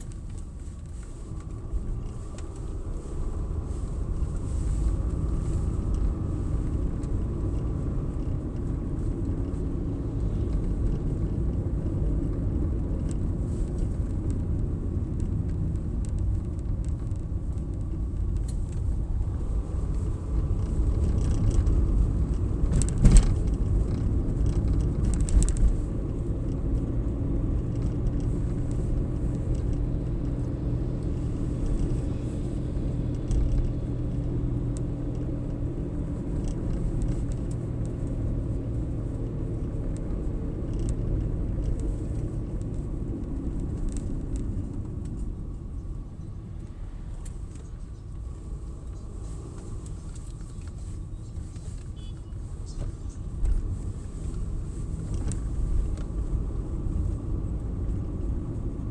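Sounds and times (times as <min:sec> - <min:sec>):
engine and tyre rumble in car: 0:00.0 - 0:58.9.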